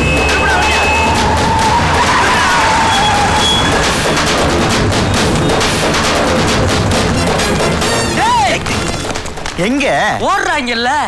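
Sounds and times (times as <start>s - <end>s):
car moving: 0.0s - 9.3s
rapid percussive hits: 0.0s - 10.0s
action film score: 0.0s - 10.4s.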